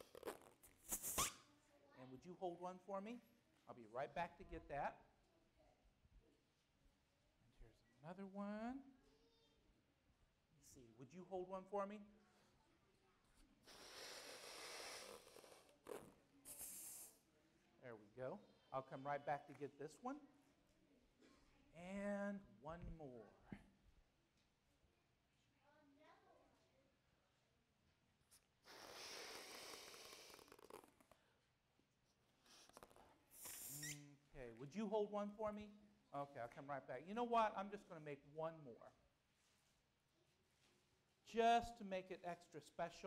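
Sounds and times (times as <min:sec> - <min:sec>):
balloon handling sounds: 0:00.0 - 0:01.4
balloon being inflated: 0:00.0 - 0:01.5, 0:13.6 - 0:17.2, 0:28.4 - 0:31.2, 0:32.4 - 0:34.1.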